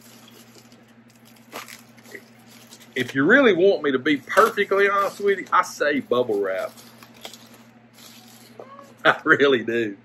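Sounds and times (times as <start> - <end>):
bubble wrap crinkling: 0.0 - 9.0.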